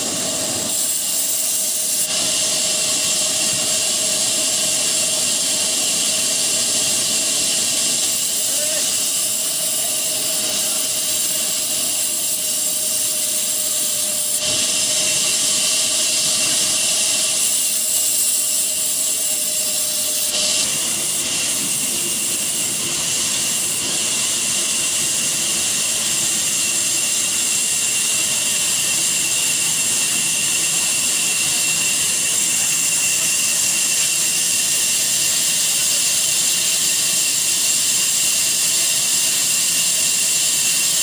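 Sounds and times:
band saw and engine running: 0:00.0 - 0:41.0
steady saw tone: 0:00.0 - 0:41.0.

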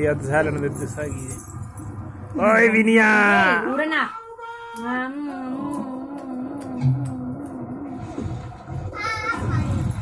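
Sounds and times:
light jingling: 0:00.0 - 0:02.0
person's wavering drawn-out vocal: 0:05.0 - 0:08.2.

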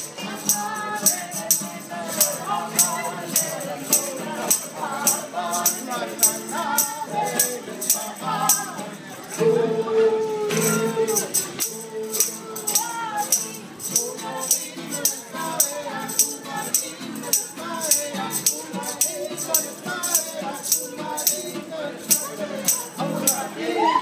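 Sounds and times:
tambourine beat: 0:00.0 - 0:09.4, 0:10.6 - 0:23.6
acoustic guitar: 0:00.0 - 0:24.0.

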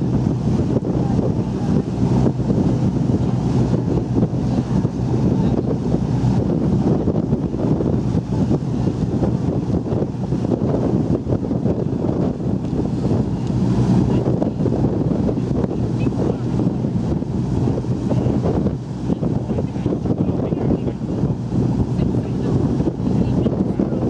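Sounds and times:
boat engine hum: 0:00.0 - 0:24.0
water wash: 0:00.0 - 0:24.0
wind buffeting microphone: 0:00.0 - 0:24.0.

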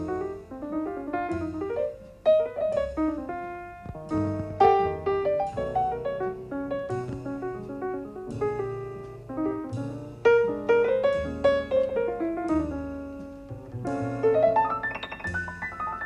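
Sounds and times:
jazz piano: 0:00.0 - 0:16.0
plucked double bass: 0:00.0 - 0:16.0.

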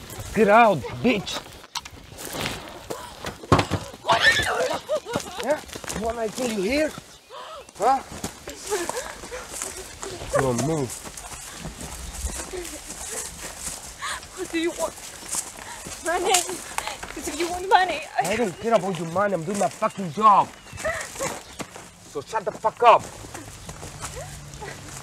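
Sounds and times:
footsteps on gravel path: 0:00.0 - 0:25.0.

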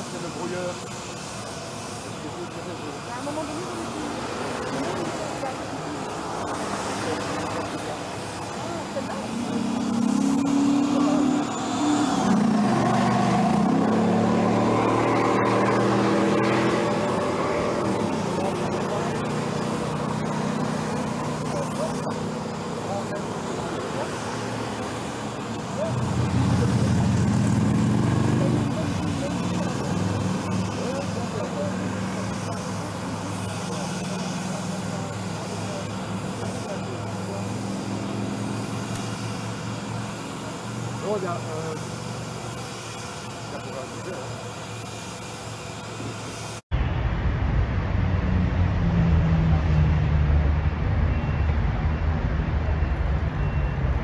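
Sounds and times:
vehicles driving past: 0:00.0 - 0:54.0.

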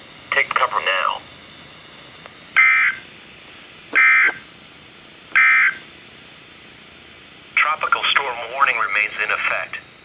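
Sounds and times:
digital data bursts from radio speaker: 0:00.3 - 0:01.2, 0:02.6 - 0:03.0, 0:04.0 - 0:04.4, 0:05.4 - 0:05.8, 0:07.6 - 0:09.9.

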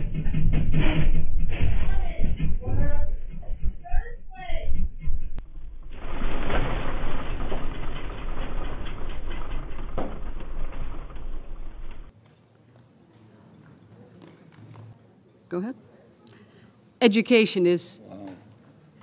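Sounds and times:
earthquake low rumble: 0:00.0 - 0:12.1
rattling and clicks: 0:06.4 - 0:12.1.

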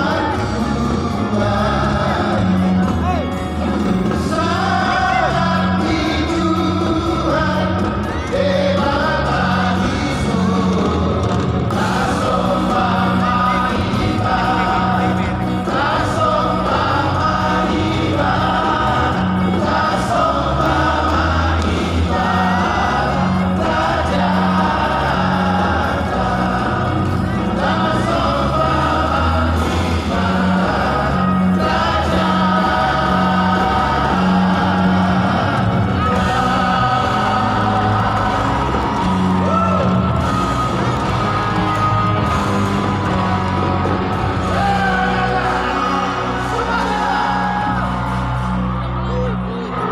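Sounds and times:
gospel band over loudspeakers: 0:00.0 - 0:49.9.

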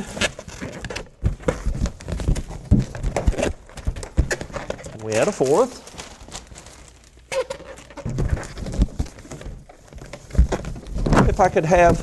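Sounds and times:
rubber balloons being twisted: 0:00.0 - 0:12.0.

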